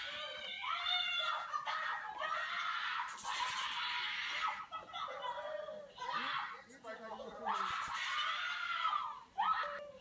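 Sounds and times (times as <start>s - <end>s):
young boy screaming and crying: 0.0s - 6.6s, 7.4s - 10.0s.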